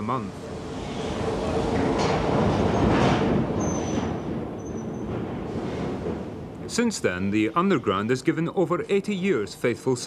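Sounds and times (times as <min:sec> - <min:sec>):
underground train rumble: 0:00.0 - 0:09.6.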